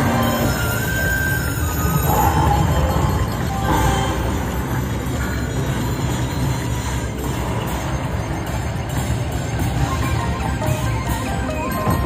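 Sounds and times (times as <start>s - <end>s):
slot machine music: 0.0s - 12.0s.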